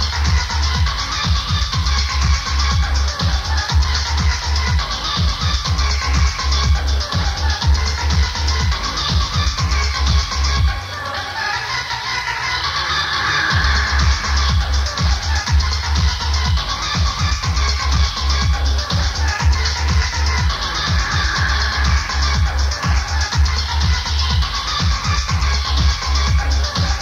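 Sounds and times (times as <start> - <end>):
electronic dance music: 0.0 - 27.0.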